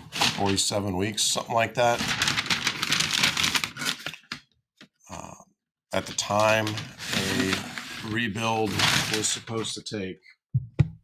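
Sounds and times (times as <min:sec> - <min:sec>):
paper crinkling in a box: 0:01.8 - 0:04.3, 0:06.0 - 0:09.7.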